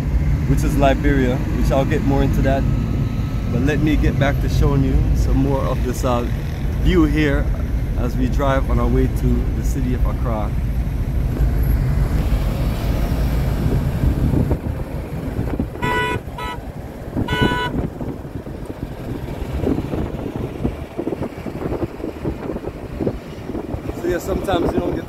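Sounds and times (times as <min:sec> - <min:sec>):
car road and engine noise: 0:00.0 - 0:25.0
vehicle horn toots: 0:15.7 - 0:16.6, 0:17.2 - 0:17.9.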